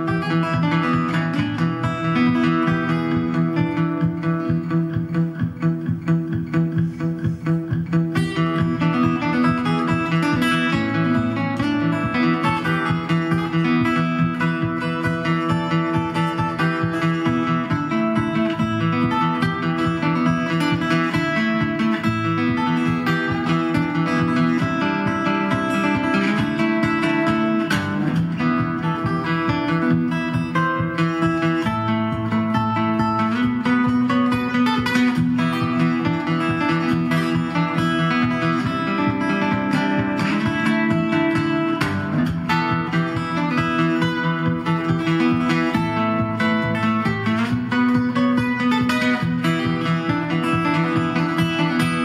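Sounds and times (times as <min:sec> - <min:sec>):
acoustic guitar fingerstyle: 0:00.0 - 0:52.0.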